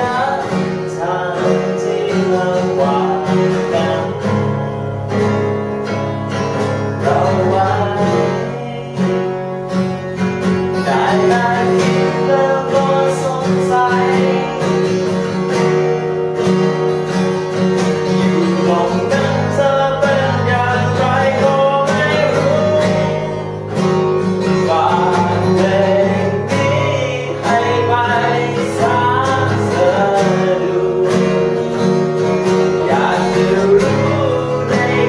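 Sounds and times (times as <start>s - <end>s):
acoustic guitar chords: 0.0s - 35.0s.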